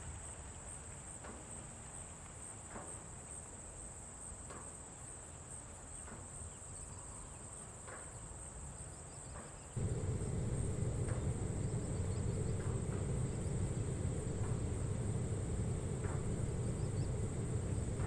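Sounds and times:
loud low rumble: 9.8 - 18.0
low background rumble: 9.8 - 18.0.

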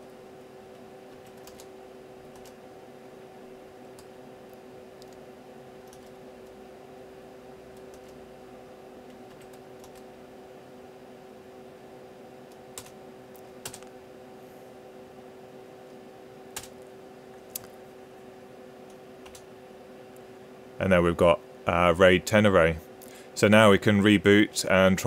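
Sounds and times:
steady hum: 0.0 - 25.0.

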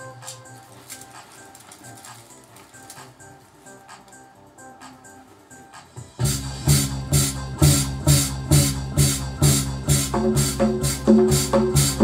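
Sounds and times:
keyboard house rhythm: 0.0 - 12.0.

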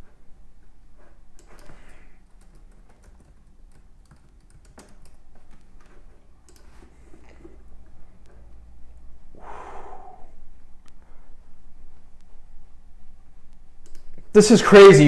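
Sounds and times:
low hum: 0.0 - 14.4
small clicks: 1.4 - 8.4, 13.5 - 14.3
breathy exhale: 9.3 - 10.4.

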